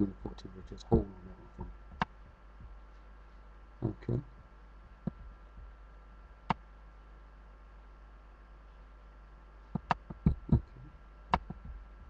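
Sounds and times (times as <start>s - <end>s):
low handling thumps: 0.0s - 3.0s, 3.8s - 6.5s, 9.8s - 12.0s
faint electrical hum: 0.0s - 12.0s.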